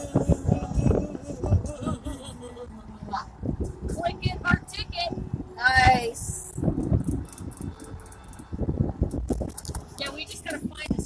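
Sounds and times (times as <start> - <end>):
people talking: 0.0 - 3.3, 3.9 - 6.4, 10.0 - 11.0
car rumble: 0.0 - 11.0.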